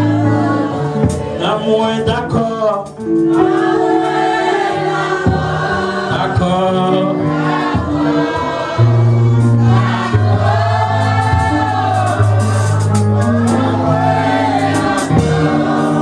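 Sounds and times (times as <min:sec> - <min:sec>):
bass notes: 0:00.0 - 0:16.0
choir singing gospel: 0:00.0 - 0:16.0.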